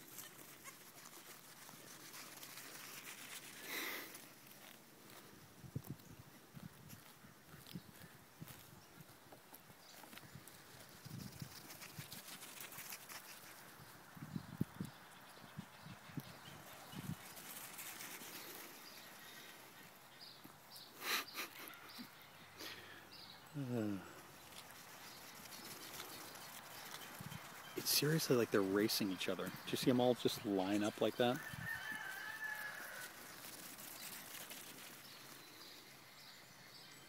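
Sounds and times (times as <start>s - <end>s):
goat kid calling: 0.0s - 1.7s
hooves pattering on sand: 0.0s - 21.0s, 24.1s - 37.0s.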